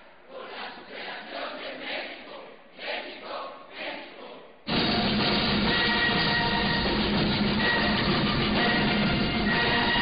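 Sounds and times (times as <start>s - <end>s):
school band playing a hymn: 4.7s - 10.0s.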